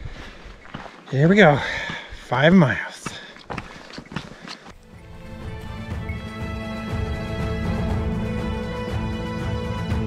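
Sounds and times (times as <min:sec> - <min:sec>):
footsteps on dirt road: 0:00.0 - 0:05.0.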